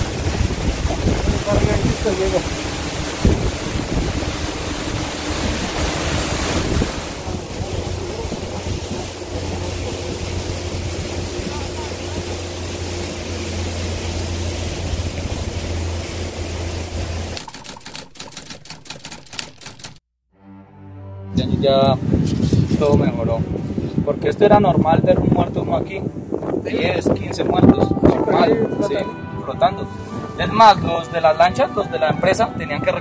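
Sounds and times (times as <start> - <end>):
rush of wind and water: 0.0 - 18.2, 21.4 - 33.0
motorboat engine humming: 0.0 - 20.0
rapid sharp clicks: 17.4 - 20.1.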